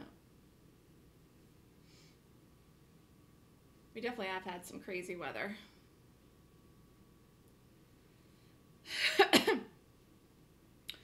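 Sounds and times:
person coughing: 9.0 - 9.7.

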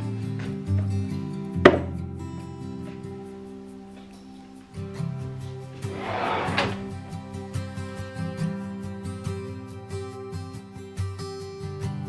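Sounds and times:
background music with held tones: 0.0 - 12.0
shelf snapping into place: 5.8 - 7.0.

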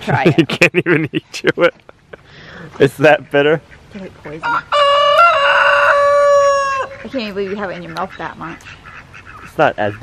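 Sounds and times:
rooster crowing: 4.4 - 7.0.

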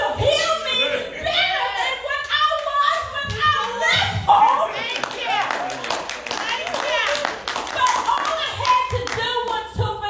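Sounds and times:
irregular hand clapping: 4.5 - 9.6.

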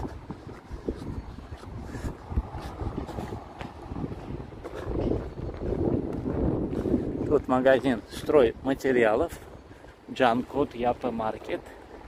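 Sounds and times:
street noise: 0.0 - 12.0
wind buffeting microphone: 0.0 - 12.0.

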